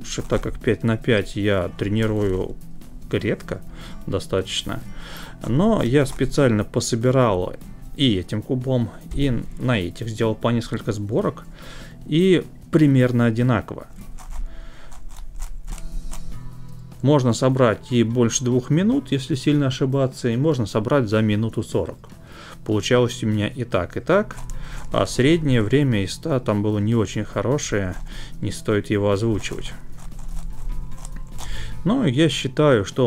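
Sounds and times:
puzzle cube clicking: 14.1s - 16.4s, 24.2s - 25.0s, 29.4s - 31.7s.

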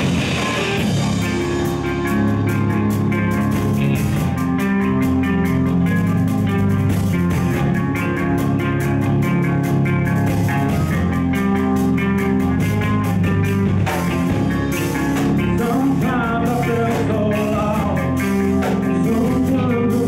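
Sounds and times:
heavy metal band playing: 0.0s - 20.0s
person singing: 15.4s - 20.0s.

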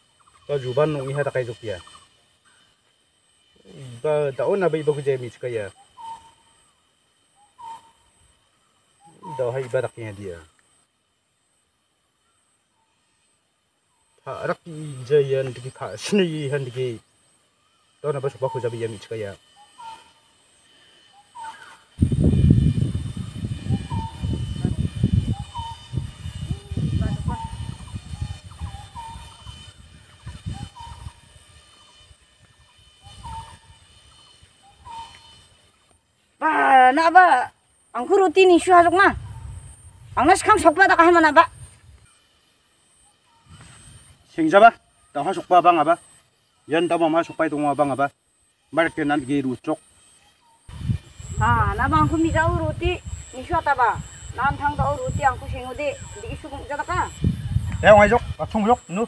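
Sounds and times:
bird calling: 0.0s - 10.8s, 12.0s - 59.0s
bird whistling call: 5.7s - 8.2s, 18.3s - 20.2s, 21.1s - 22.0s, 23.2s - 35.7s.

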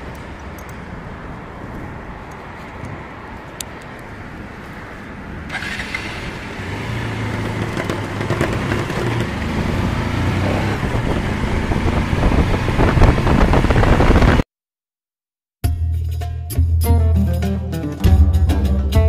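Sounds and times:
road and wind noise: 0.0s - 14.5s
motorcycle accelerating: 4.9s - 14.4s.

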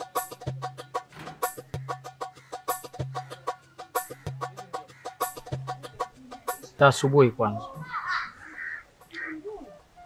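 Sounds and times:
crow cawing: 1.4s - 6.6s, 7.7s - 9.6s.

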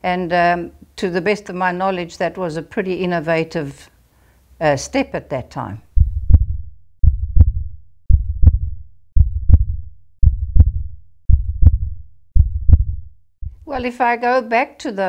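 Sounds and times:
heartbeat double thump: 5.9s - 13.8s
person speaking: 13.6s - 14.2s.

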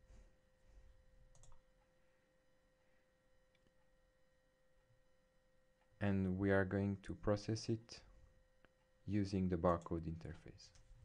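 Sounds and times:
faint steady hum: 0.0s - 11.0s
computer mouse click: 1.3s - 1.6s.

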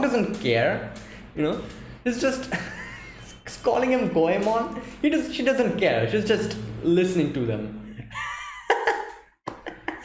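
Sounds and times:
man laughing: 2.4s - 3.3s, 8.0s - 10.0s.

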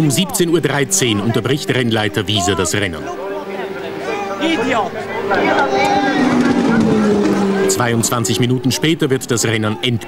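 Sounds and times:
indistinct voices talking: 0.0s - 10.0s
steady engine hum: 0.0s - 10.0s.

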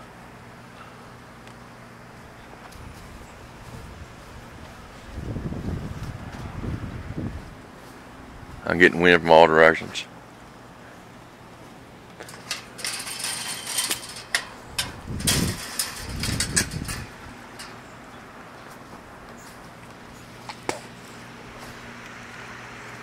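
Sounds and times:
faint steady hum: 0.0s - 23.0s
wind buffeting microphone: 2.8s - 7.7s, 14.5s - 17.5s.

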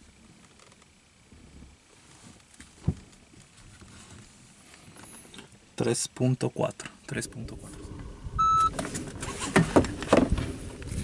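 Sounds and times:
rustling: 0.3s - 5.5s.

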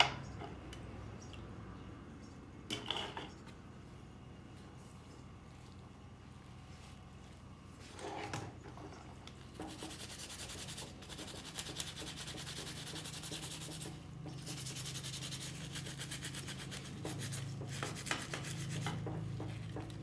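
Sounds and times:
brush scrubbing metal in liquid: 9.6s - 19.6s.

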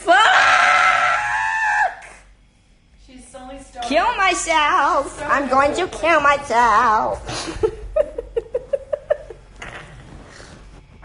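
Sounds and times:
woman screaming: 0.0s - 2.2s.

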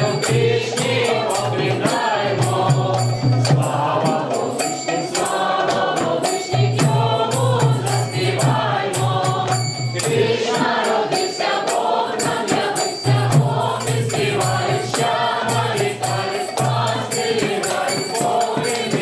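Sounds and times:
group singing a carol: 0.0s - 19.0s
tambourine jingling: 0.0s - 19.0s.

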